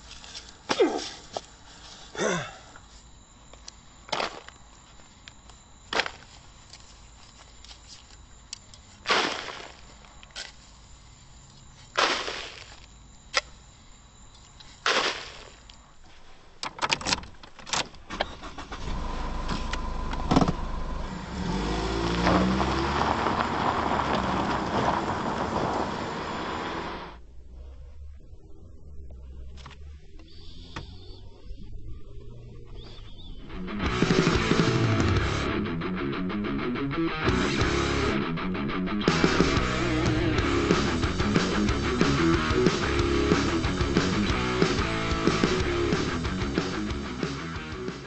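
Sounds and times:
shovelled soil scraping and falling: 9.0s - 10.7s, 11.8s - 12.8s, 14.6s - 15.6s
clicks of keys and car door: 16.6s - 18.3s
car engine starting and running: 18.0s - 31.6s, 32.4s - 48.0s.

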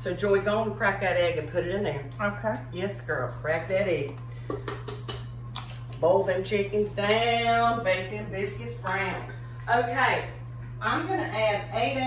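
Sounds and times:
low hum: 0.0s - 12.0s
egg cracking on metal bowl: 4.4s - 5.7s.

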